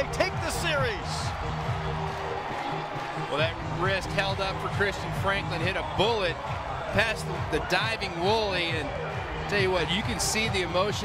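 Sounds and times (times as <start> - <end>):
music playing: 0.0 - 11.0
stadium crowd cheering: 0.0 - 11.0.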